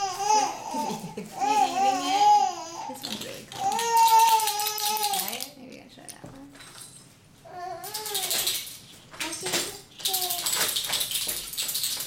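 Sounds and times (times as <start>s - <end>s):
plastic baby rattle shaking: 3.0s - 5.6s, 7.8s - 12.0s.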